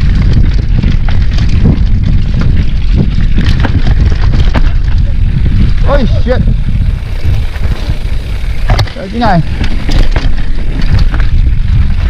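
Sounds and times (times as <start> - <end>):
bike knocking on bumps: 0.0 - 12.0
bike rattling: 0.0 - 12.0
wind noise on microphone: 0.0 - 12.0.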